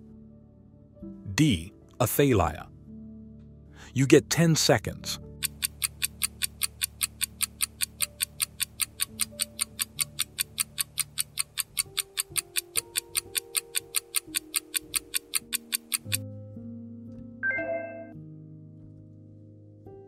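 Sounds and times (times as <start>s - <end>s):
soft background music: 0.0s - 20.0s
clock ticking: 5.2s - 16.2s.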